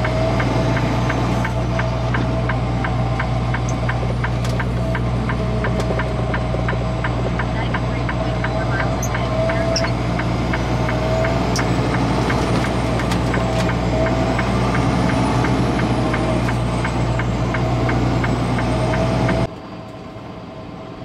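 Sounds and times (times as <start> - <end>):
light ticking: 0.0 - 12.4
road noise on wet road: 0.0 - 21.0
truck engine drone: 0.0 - 21.0.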